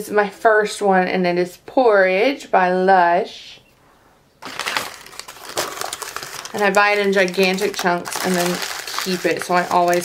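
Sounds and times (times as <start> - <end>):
wrapping crinkling: 4.4 - 10.0.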